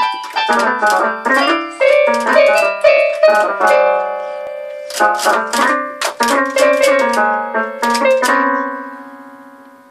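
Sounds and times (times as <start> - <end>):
toy keyboard note clusters: 0.0 - 8.7.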